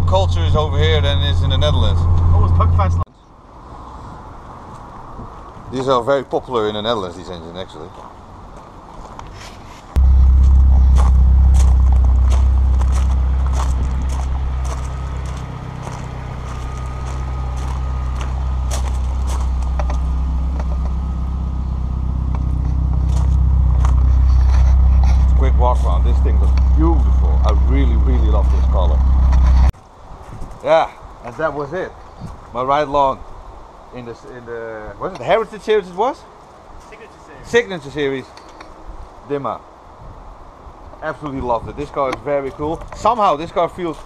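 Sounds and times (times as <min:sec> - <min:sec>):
car engine idling: 0:00.0 - 0:03.0, 0:10.0 - 0:29.7
footsteps on gravel: 0:07.9 - 0:30.4.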